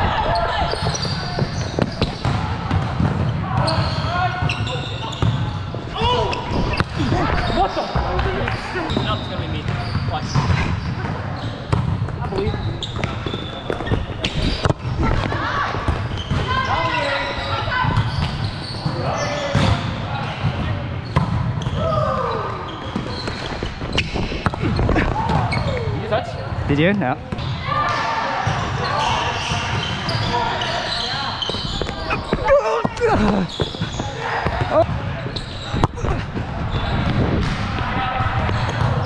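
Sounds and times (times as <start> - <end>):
sneakers squeaking on hardwood floor: 0.4 - 19.8, 21.0 - 26.6, 28.4 - 37.5.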